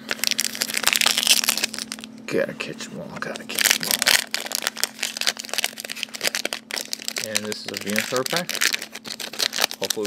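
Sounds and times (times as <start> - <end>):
foil wrapper crinkling: 0.0 - 2.1, 3.2 - 10.0.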